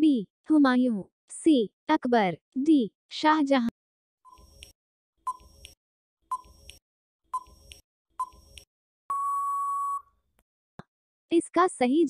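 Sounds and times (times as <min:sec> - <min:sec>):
countdown timer ticks: 0:05.3 - 0:06.8, 0:07.4 - 0:09.3
steady timer beep: 0:05.3 - 0:06.8, 0:07.4 - 0:10.0.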